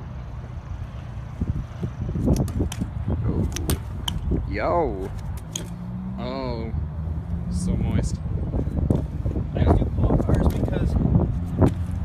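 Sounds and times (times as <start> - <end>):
bike rolling on concrete: 0.0 - 6.0, 7.0 - 12.0
bike clicks and rattles: 2.2 - 4.3, 5.0 - 5.8.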